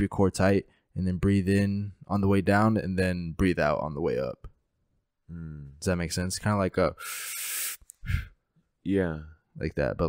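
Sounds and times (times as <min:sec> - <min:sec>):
man exhaling with a hiss: 0:07.0 - 0:08.4.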